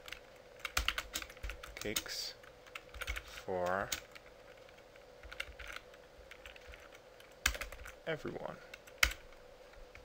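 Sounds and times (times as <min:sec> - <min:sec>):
computer keyboard typing: 0:00.0 - 0:08.0, 0:08.7 - 0:10.0.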